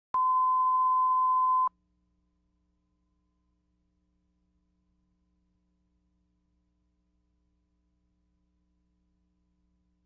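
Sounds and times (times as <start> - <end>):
pure test tone beep: 0.2 - 1.7.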